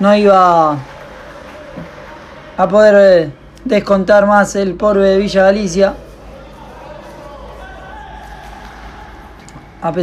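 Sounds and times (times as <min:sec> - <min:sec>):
echoing indoor court noise: 0:00.0 - 0:10.0.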